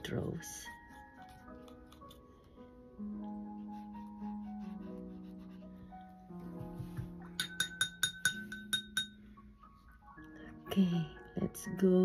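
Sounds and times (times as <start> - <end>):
brush clinking against glass: 7.2 - 9.2.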